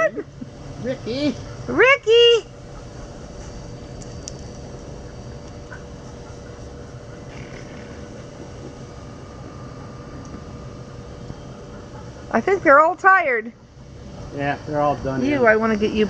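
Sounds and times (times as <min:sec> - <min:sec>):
faint constant tone: 0:00.0 - 0:16.0
low outdoor hum: 0:00.0 - 0:16.0.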